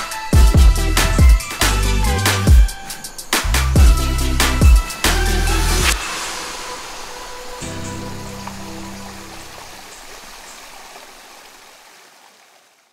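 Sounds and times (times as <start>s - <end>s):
stream running over rocks: 2.3s - 12.9s.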